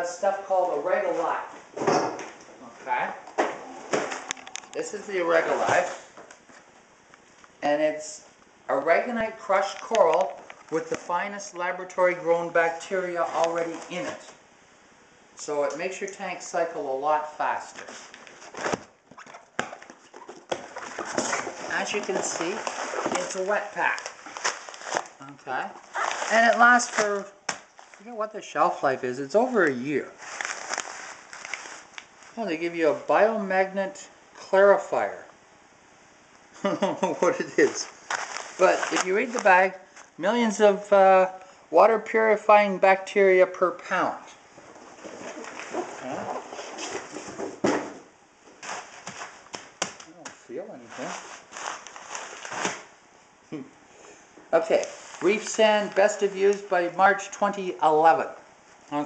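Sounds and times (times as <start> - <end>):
plastic bag rustling: 20.0 - 28.1, 29.5 - 32.4, 37.2 - 40.2, 50.8 - 52.9, 54.7 - 56.3
sharp plastic crackle: 20.5 - 28.1, 29.6 - 32.3, 37.6 - 40.2, 51.0 - 52.9.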